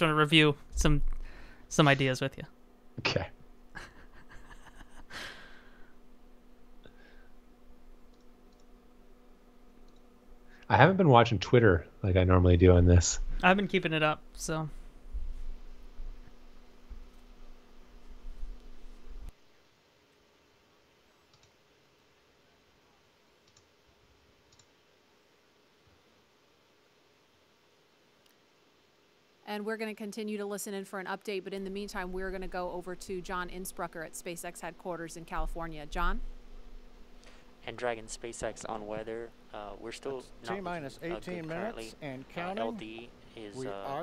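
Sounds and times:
low hum: 0.0s - 19.4s, 31.5s - 44.0s
faint clicks: 9.8s - 10.1s, 21.3s - 21.6s, 23.4s - 23.7s, 24.5s - 24.7s.

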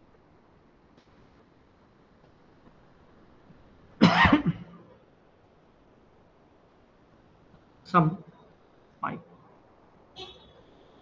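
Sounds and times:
man coughing: 4.0s - 4.8s.

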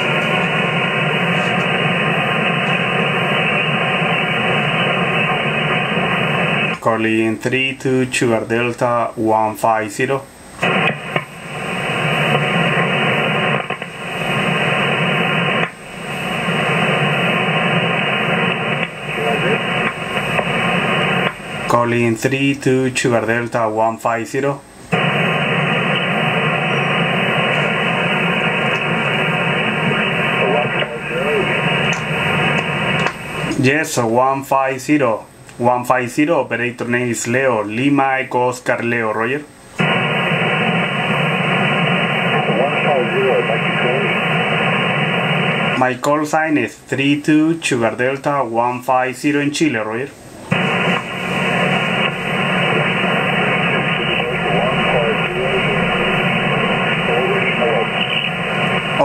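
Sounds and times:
receiver static hiss: 0.0s - 59.0s.

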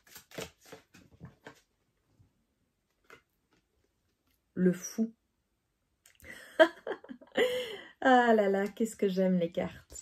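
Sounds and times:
woman laughing softly: 6.2s - 8.0s.

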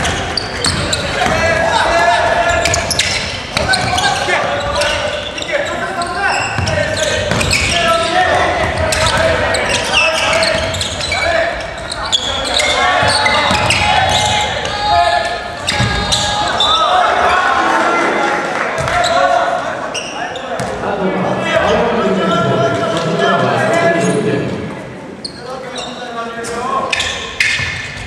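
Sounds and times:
overlapping shouts and voices: 12.3s - 26.4s.

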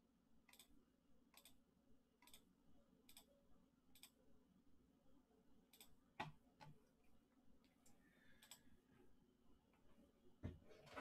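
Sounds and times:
computer mouse clicks: 0.5s - 0.7s, 1.3s - 1.6s, 2.2s - 2.5s, 3.1s - 3.3s, 3.9s - 4.2s, 5.7s - 6.8s, 8.4s - 8.7s.

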